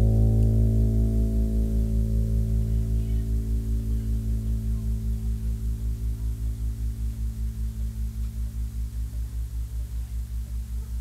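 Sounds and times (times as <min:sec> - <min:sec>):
bass guitar chord ringing: 0:00.0 - 0:11.0.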